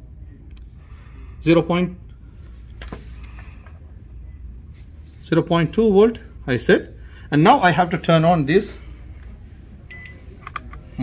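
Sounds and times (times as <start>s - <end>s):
multimeter high beep: 9.9s - 10.2s.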